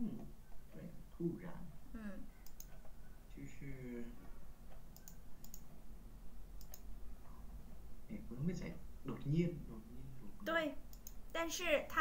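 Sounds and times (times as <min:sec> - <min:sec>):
low steady hum: 0:00.0 - 0:12.0
computer control clicks: 0:02.4 - 0:03.0, 0:04.7 - 0:05.7, 0:06.6 - 0:06.9, 0:10.9 - 0:11.3.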